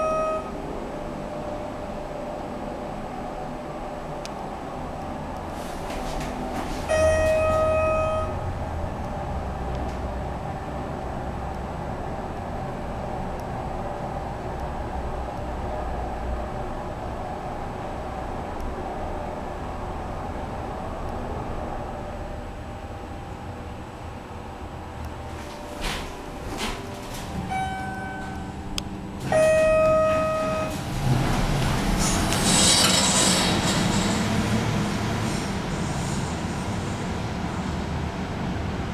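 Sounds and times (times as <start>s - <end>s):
electronic chime tone: 0.0s - 0.6s, 6.9s - 8.4s, 27.5s - 28.7s, 29.3s - 30.8s
elevator low hum: 0.0s - 38.9s
elevator clicks: 5.9s - 8.4s, 25.8s - 30.9s.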